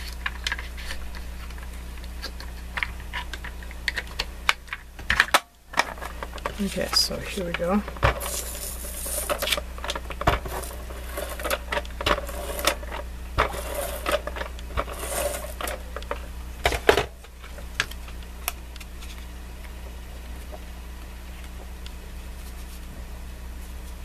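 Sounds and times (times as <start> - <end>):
paper rustling and scraping: 0.0 - 3.7, 7.9 - 16.3, 22.3 - 22.9.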